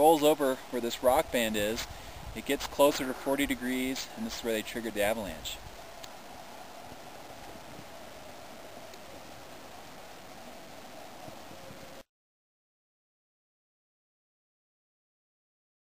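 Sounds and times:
outdoor background hiss: 0:00.0 - 0:12.1.

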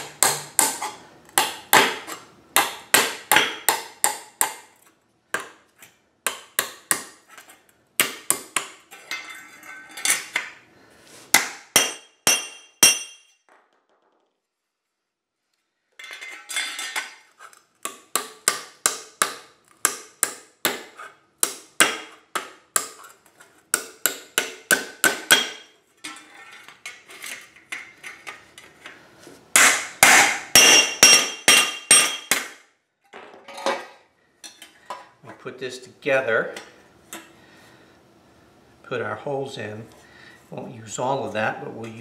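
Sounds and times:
hammer striking sheet metal: 0:11.4 - 0:13.4.

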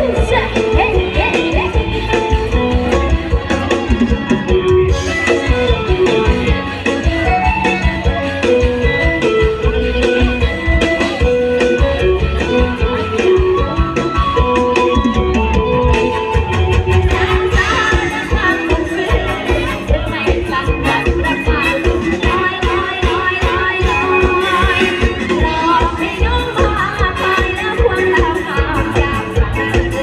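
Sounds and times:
drum kit beat: 0:00.0 - 0:30.0
plucked guitar-like melody: 0:00.0 - 0:30.0.

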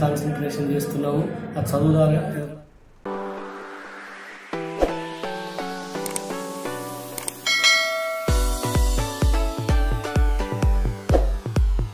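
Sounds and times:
electronic dance music: 0:03.1 - 0:11.9
bright bell chime: 0:07.4 - 0:09.0.

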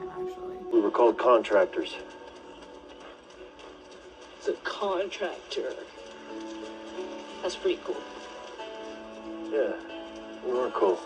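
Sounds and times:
horses walking: 0:00.0 - 0:11.0.

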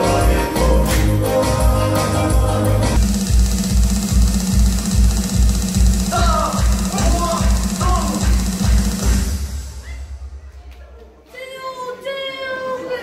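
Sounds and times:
deep drum beat: 0:02.9 - 0:10.6.

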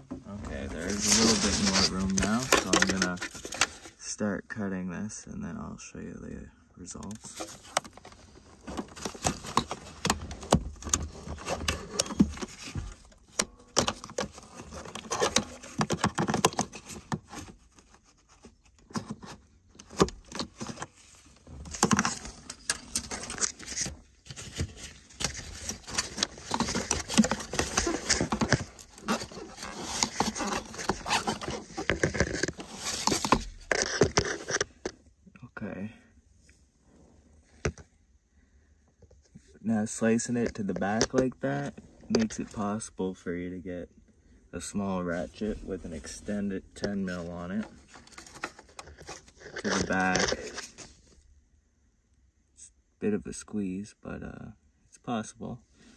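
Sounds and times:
rustling and clicking of wiring: 0:00.6 - 0:03.9, 0:07.0 - 0:35.0.

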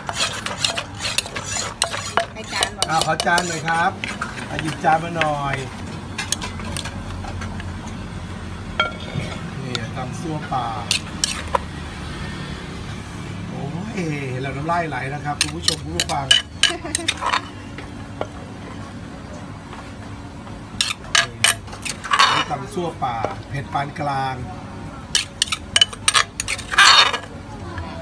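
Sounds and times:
pestle pounding in mortar: 0:00.0 - 0:06.9
spoon clinking against mortar: 0:00.1 - 0:03.8, 0:15.4 - 0:17.4, 0:25.2 - 0:27.2.

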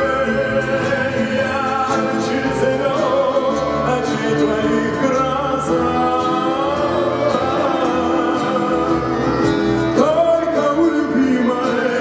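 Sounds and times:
accordion: 0:00.0 - 0:12.0
acoustic guitar: 0:00.0 - 0:12.0
double bass: 0:00.0 - 0:12.0.

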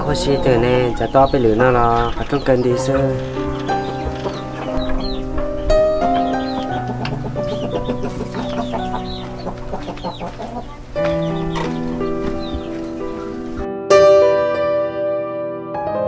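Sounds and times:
chickens clucking: 0:00.0 - 0:13.7
music with held notes and bass: 0:00.0 - 0:15.9.

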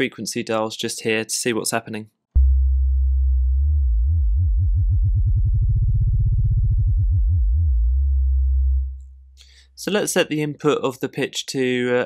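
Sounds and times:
synthesizer sine note with vibrato: 0:02.4 - 0:09.0.

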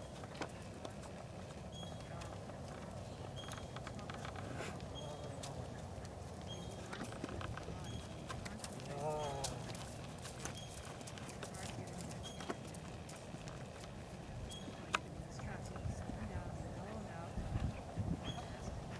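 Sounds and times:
horse hoofbeats on sand: 0:00.0 - 0:18.9.

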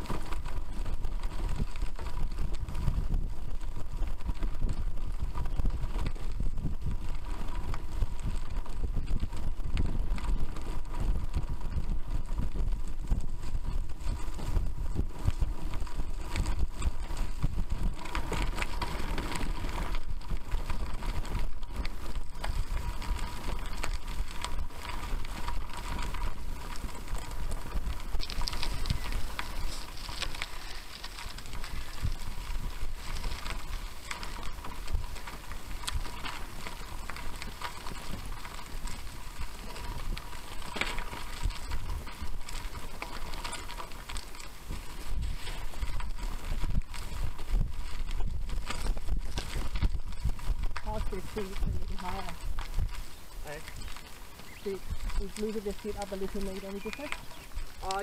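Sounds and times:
bicycle tyres on gravel: 0:00.0 - 0:58.0
wind buffeting microphone: 0:00.0 - 0:58.0.

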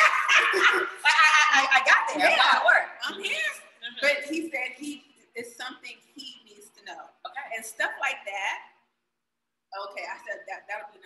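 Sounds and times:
women laughing loudly: 0:00.0 - 0:01.1.

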